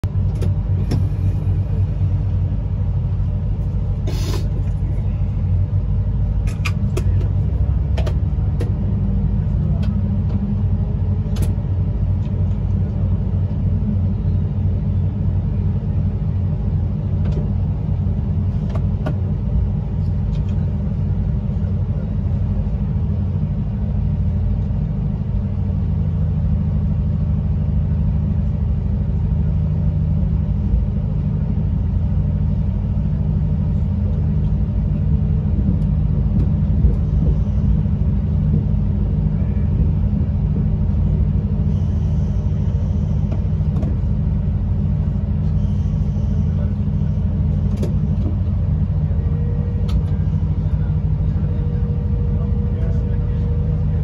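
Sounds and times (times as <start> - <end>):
electric train rumble and hum: 0.0 - 54.0.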